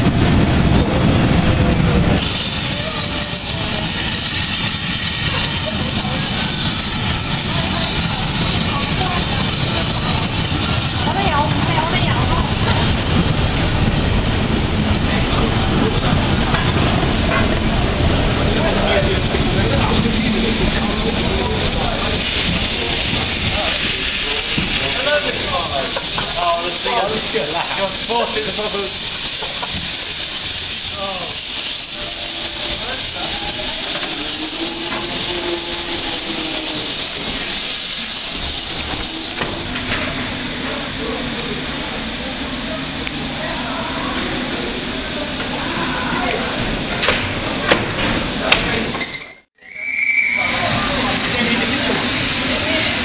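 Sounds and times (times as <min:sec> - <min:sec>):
steam locomotive hissing: 0:00.0 - 0:53.0
train carriages rolling: 0:00.0 - 0:53.0.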